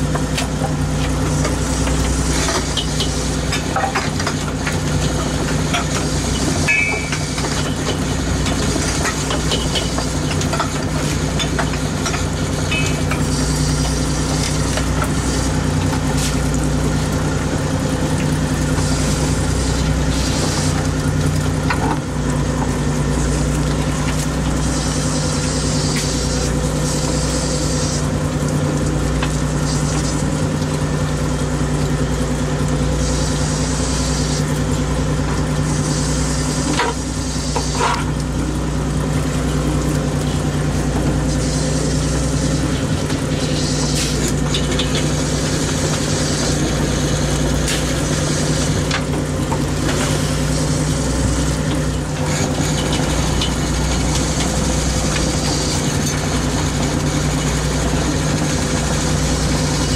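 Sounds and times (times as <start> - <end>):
boat engine droning: 0.0 - 59.9
hiss: 18.8 - 20.9, 24.6 - 28.1, 33.0 - 34.6, 35.6 - 38.1, 43.4 - 49.0.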